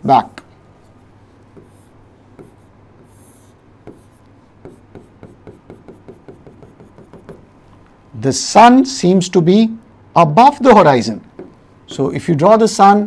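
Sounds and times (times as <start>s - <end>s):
stylus scratching on screen: 0.8s - 7.4s.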